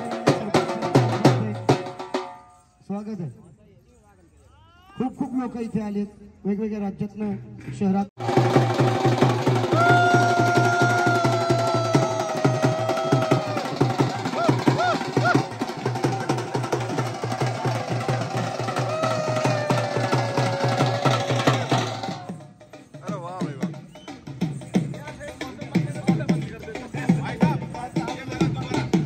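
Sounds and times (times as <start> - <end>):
dhol drums beating: 0.0 - 2.5, 8.2 - 29.0.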